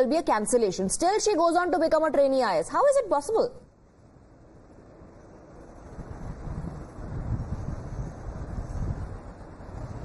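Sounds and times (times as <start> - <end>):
wind buffeting microphone: 2.9 - 10.0.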